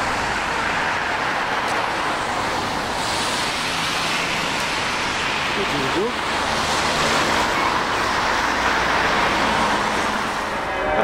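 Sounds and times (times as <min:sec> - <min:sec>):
cars passing: 0:00.0 - 0:11.0.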